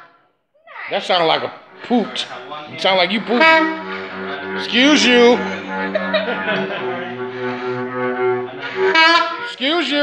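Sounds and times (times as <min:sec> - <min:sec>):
saxophone low honk: 0:01.7 - 0:09.9.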